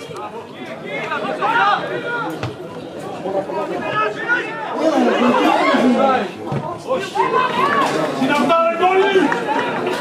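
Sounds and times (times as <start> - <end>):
people shouting and talking: 0.0 - 10.0.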